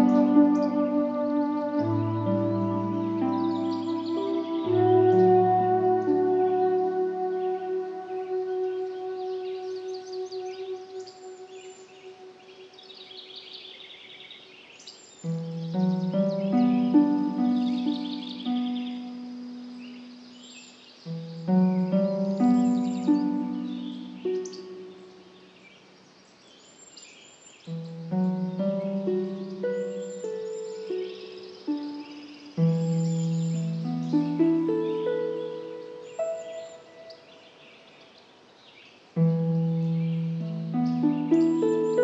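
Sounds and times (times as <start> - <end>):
ambient music chord: 0.0 - 13.6, 15.3 - 20.5, 21.1 - 25.6, 27.7 - 37.4, 39.2 - 42.0
birds chirping: 0.0 - 42.0
nature sound bed: 0.0 - 42.0.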